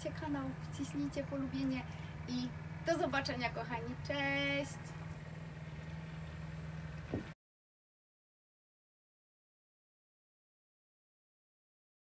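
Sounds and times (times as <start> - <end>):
engine-like low hum: 0.0 - 7.4.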